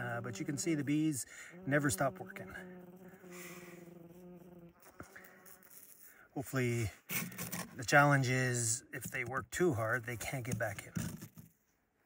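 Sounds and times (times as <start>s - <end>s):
bees buzzing: 0.0s - 6.1s.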